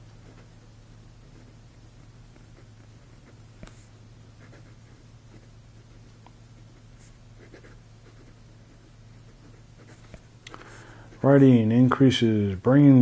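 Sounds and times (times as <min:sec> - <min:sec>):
pen nib scratching on paper: 0:01.2 - 0:11.4.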